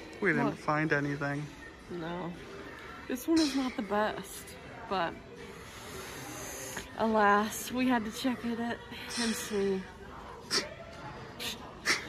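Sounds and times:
breathy hiss: 5.4s - 6.9s.

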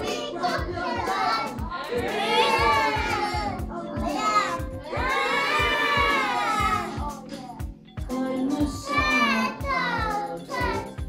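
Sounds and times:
children singing: 0.0s - 11.0s
children's song with steady beat: 0.0s - 11.0s.

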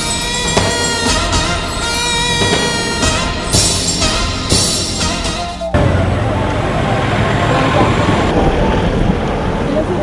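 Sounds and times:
news theme music: 0.0s - 8.3s
highway traffic passing: 0.0s - 10.0s.

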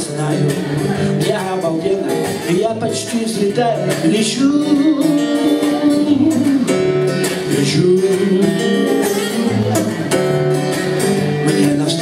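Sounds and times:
person singing: 0.0s - 10.2s, 11.2s - 12.0s
acoustic guitar strumming: 0.0s - 12.0s.

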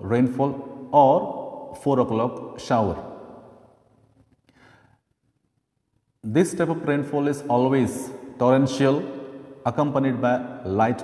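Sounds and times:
faint intake of breath: 4.5s - 5.0s.

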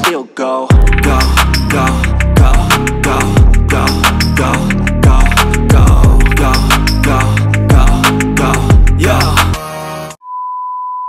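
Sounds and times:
rap background music: 0.0s - 10.2s
high-pitched test-tone beep: 10.2s - 11.0s.

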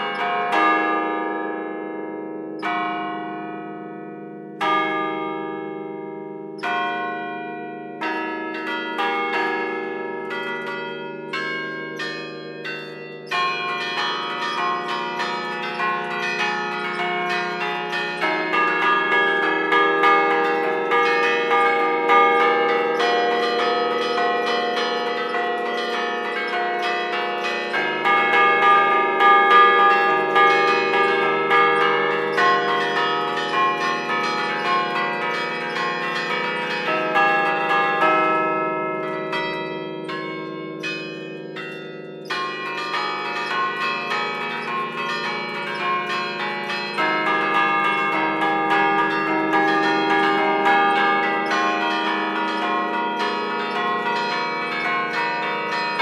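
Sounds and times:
church bells ringing melody: 0.0s - 56.0s.

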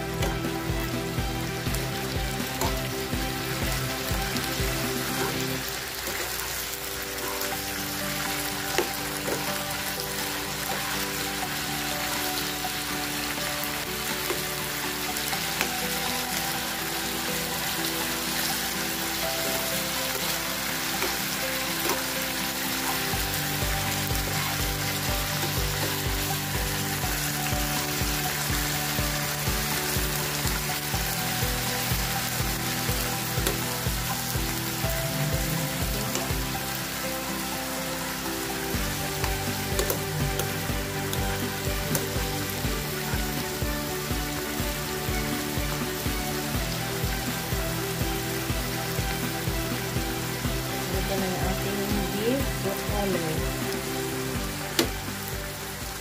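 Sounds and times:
background music with chords: 0.0s - 56.0s
food sizzling in frying pan: 0.0s - 56.0s
steady beat: 38.8s - 51.7s.

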